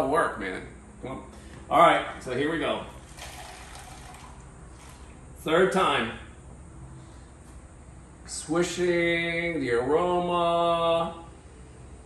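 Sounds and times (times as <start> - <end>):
coffee pouring into a cup: 3.0 - 5.2.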